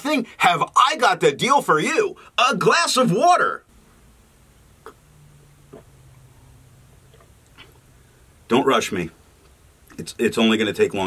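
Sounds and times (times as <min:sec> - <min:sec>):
low steady hum: 0:00.0 - 0:11.0
man swallowing water: 0:04.8 - 0:06.3, 0:07.0 - 0:07.9.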